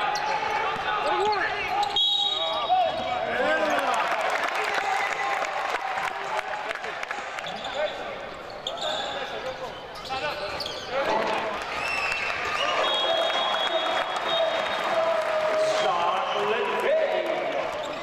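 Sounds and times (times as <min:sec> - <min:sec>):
sneakers squeaking: 0:00.0 - 0:03.7, 0:07.4 - 0:11.2, 0:17.7 - 0:18.0.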